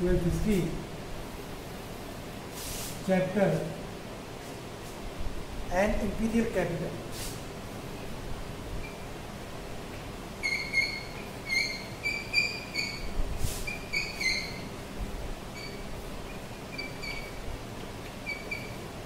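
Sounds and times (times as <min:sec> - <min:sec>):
chalk squeaking on a blackboard: 0:10.4 - 0:14.7, 0:16.7 - 0:17.4.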